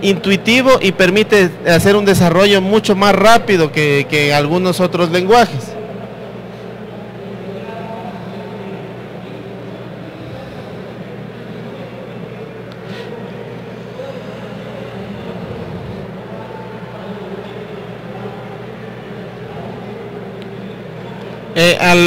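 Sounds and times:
low hum and hiss: 0.0 - 22.0.

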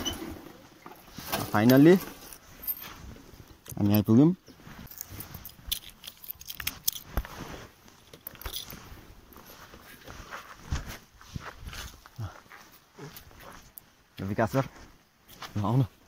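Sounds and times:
handheld camera rustling: 4.5 - 13.9.

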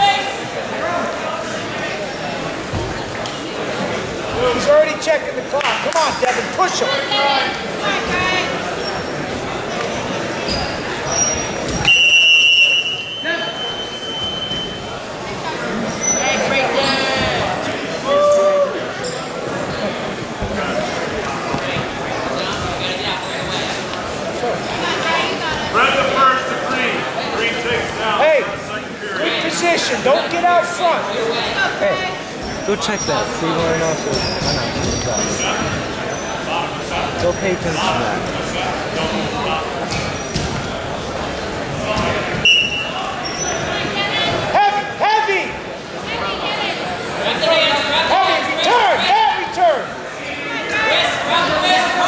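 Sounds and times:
shoes squeaking on mat: 10.4 - 12.2, 13.1 - 14.9, 32.4 - 38.1, 39.8 - 40.8, 42.0 - 43.8.

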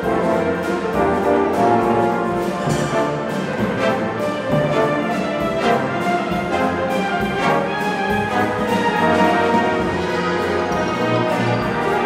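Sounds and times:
wind band playing: 0.0 - 12.0
percussion strokes: 0.2 - 12.0.

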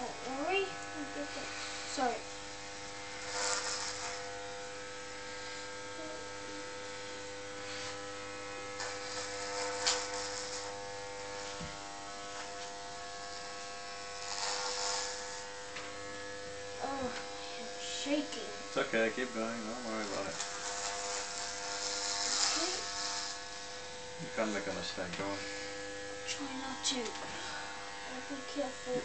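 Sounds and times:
clipper blades rasping through hair: 0.0 - 5.7, 7.0 - 18.8, 19.9 - 29.0
electric hair clippers buzzing: 0.0 - 29.0.

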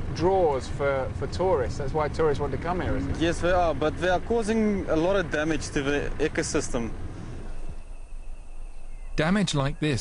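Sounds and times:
low steady rumble: 0.0 - 9.2
insect high-pitched whine: 5.8 - 10.0.

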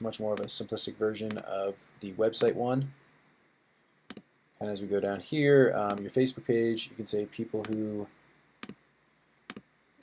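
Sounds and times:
computer mouse clicks: 7.6 - 7.9, 8.6 - 8.8.

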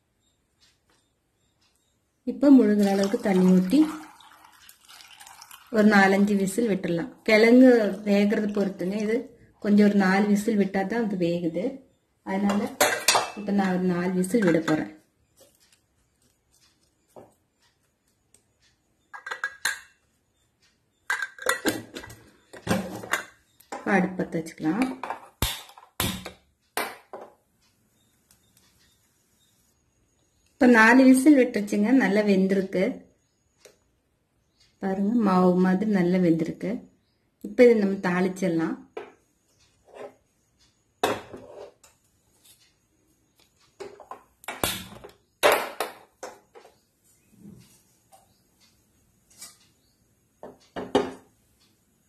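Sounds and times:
clatter and knocks at gas stove: 19.1 - 19.8, 21.1 - 23.9, 24.9 - 27.4, 50.4 - 51.3.

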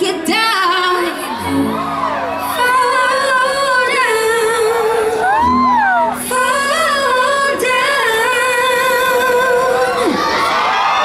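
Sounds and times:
woman singing into a microphone: 0.0 - 1.8, 2.4 - 10.5.

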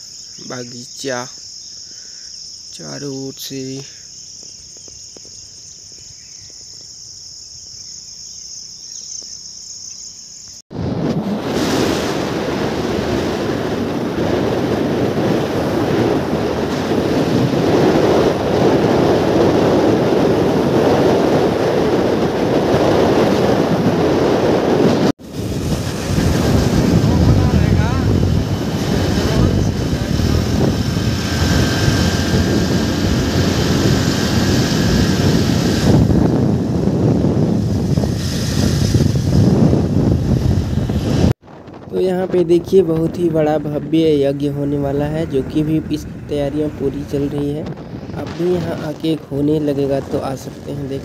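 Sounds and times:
crickets chirring: 0.0 - 10.7
rumbling road noise: 0.0 - 51.0
wind rushing over microphone: 10.7 - 51.0.

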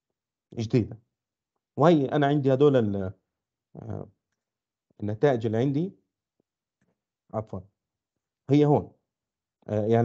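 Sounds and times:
man lecturing: 0.6 - 1.0, 1.8 - 3.1, 3.8 - 4.1, 5.0 - 5.9, 7.4 - 7.6, 8.5 - 8.9, 9.7 - 10.0.

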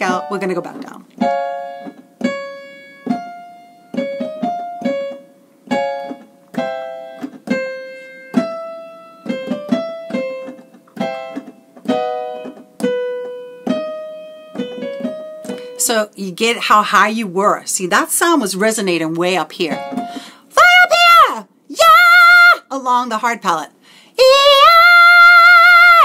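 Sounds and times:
piano chords and runs: 0.0 - 15.9.

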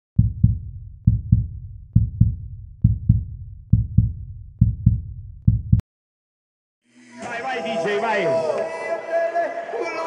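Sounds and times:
heartbeat thumps: 0.2 - 5.8.

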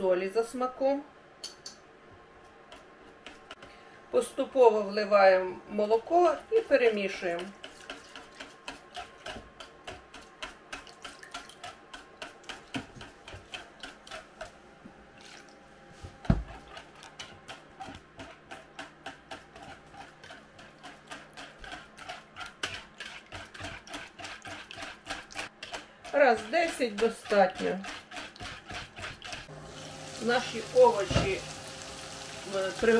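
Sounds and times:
wire whisk beating eggs: 5.8 - 14.6, 16.3 - 32.9.

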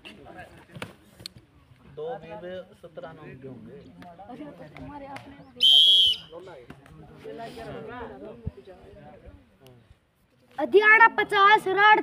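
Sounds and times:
referee's whistle blast: 5.6 - 6.3.

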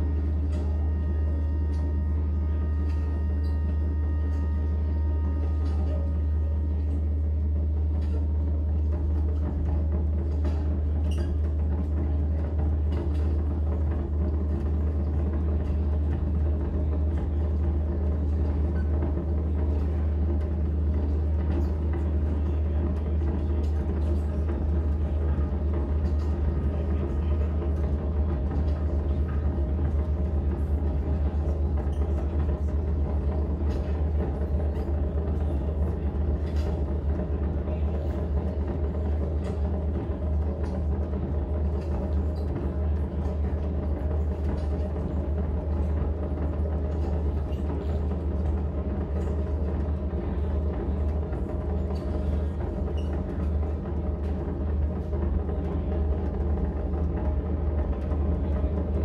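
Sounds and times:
electronic drone music: 0.0 - 8.9.

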